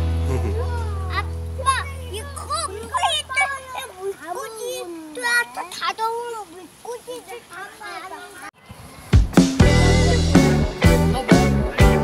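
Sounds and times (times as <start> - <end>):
children calling out and chattering: 0.3 - 12.0
background music held chord: 9.6 - 12.0.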